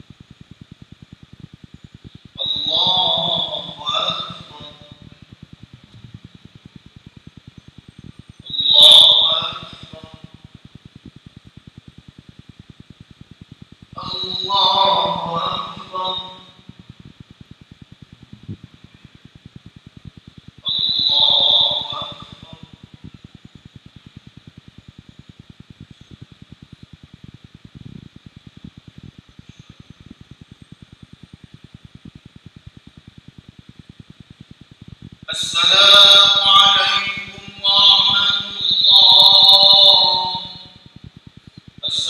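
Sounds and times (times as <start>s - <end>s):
faint steady hum: 0.0s - 42.0s
amplified voice chanting: 2.4s - 5.1s, 8.5s - 10.3s, 14.0s - 16.6s, 20.6s - 22.8s, 35.3s - 40.8s.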